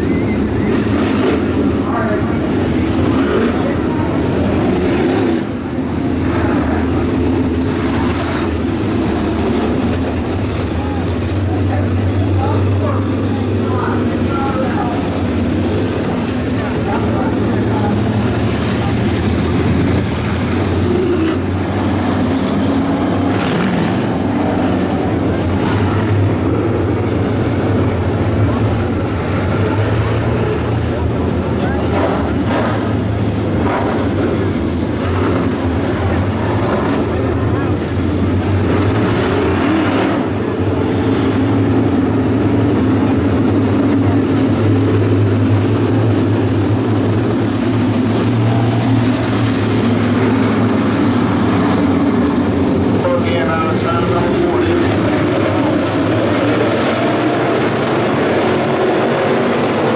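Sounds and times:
race car engines droning: 0:00.0 - 0:59.9.

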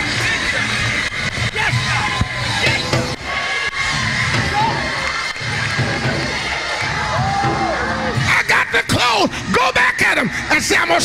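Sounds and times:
church music with low beat: 0:00.0 - 0:10.5
congregation cheering and shouting: 0:00.0 - 0:11.0.

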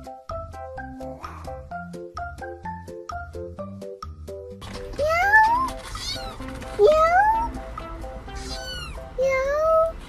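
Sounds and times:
background music: 0:00.0 - 0:10.0
kitten meowing: 0:05.2 - 0:06.4, 0:08.4 - 0:09.9.

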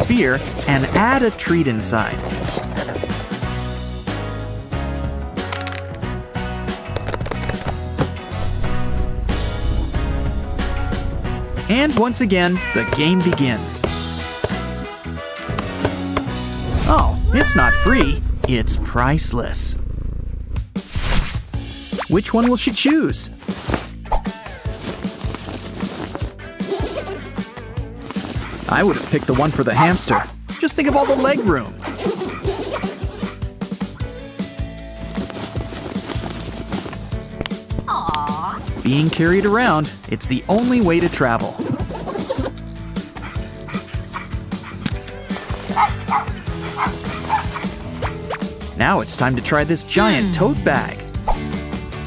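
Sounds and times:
background music: 0:00.0 - 0:52.0
small dog yipping: 0:31.9 - 0:33.4, 0:45.7 - 0:48.2.

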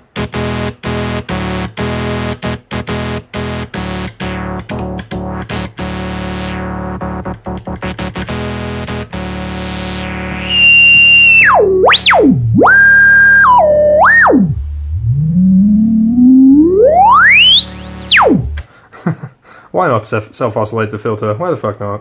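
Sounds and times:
synthesizer held note: 0:05.3 - 0:18.6
sweeping whistling synth tone: 0:10.3 - 0:18.6.

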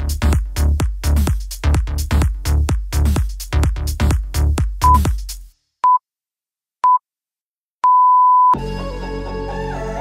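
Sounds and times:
background music: 0:08.6 - 0:10.0.

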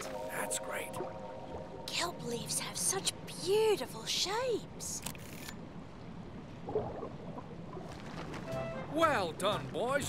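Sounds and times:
soft background music: 0:00.0 - 0:03.4, 0:08.4 - 0:10.0.

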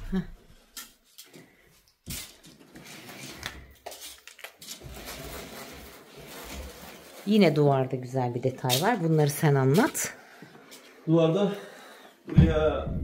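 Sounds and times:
roller blind rattling: 0:02.4 - 0:10.0.

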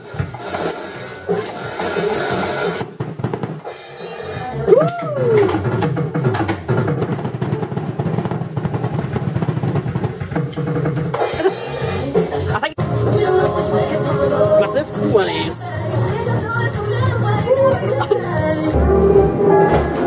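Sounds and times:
drum kit playing: 0:00.0 - 0:20.0.

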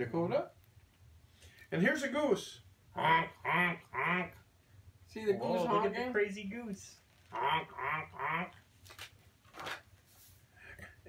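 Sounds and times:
man imitating goose honks: 0:03.0 - 0:04.4, 0:07.3 - 0:08.6.

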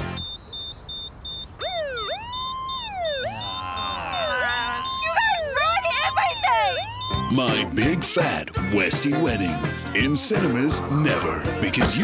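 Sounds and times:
rapid high-pitched electronic beeping: 0:00.2 - 0:05.4
police siren wailing: 0:01.4 - 0:07.6.

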